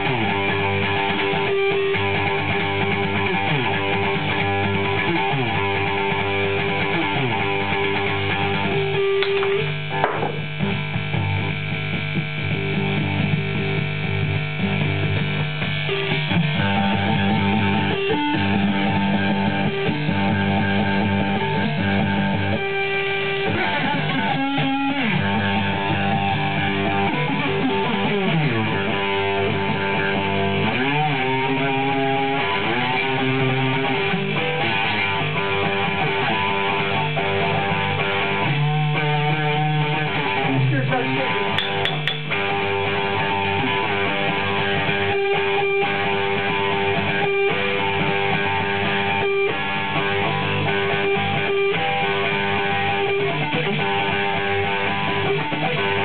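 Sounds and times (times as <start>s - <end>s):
electric slide string notes: 0.0s - 56.0s.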